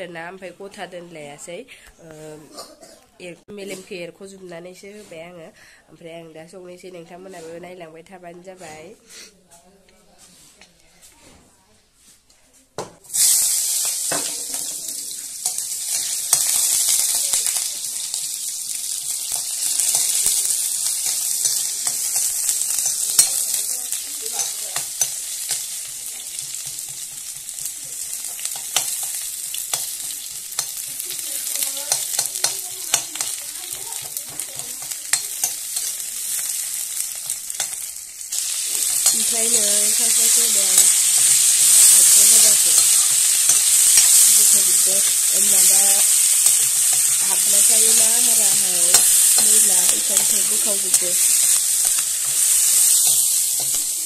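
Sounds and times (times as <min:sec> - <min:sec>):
onions and meat sizzling in oil: 0:13.1 - 0:54.0.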